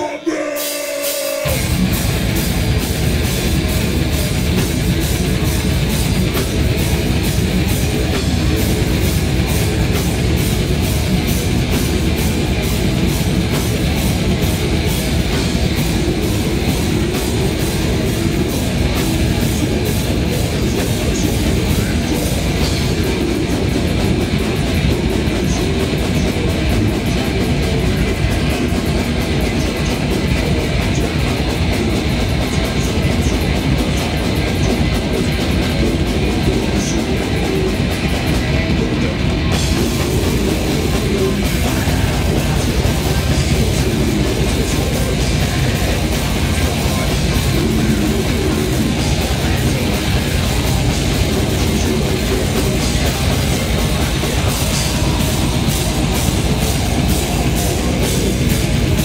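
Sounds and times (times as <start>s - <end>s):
death metal band playing: 0.0s - 59.0s
distorted electric guitars: 0.0s - 59.0s
fast drumming: 0.0s - 59.0s.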